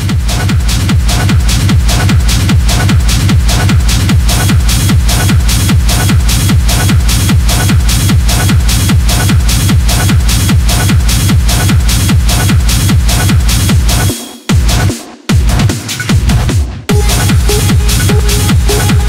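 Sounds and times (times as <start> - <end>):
four-on-the-floor kick drum: 0.0 - 19.0
fast ticking percussion: 16.9 - 19.0.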